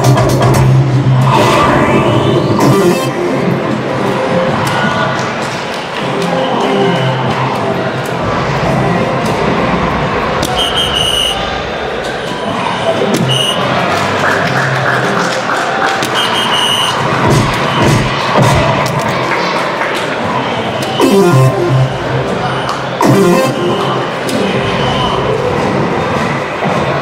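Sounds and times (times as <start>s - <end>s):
electronic machine music: 0.0s - 4.6s, 21.0s - 25.4s
crowd murmur: 0.0s - 27.0s.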